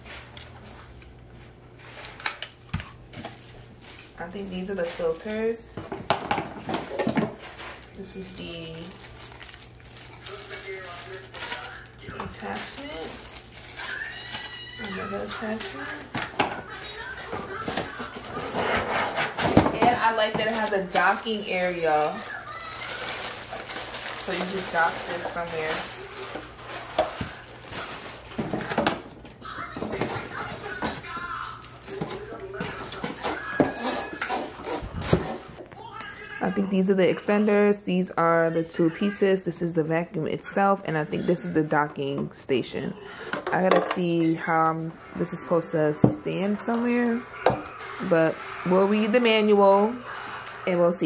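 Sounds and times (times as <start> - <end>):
plastic packaging crinkling: 1.8 - 5.6, 6.2 - 35.6.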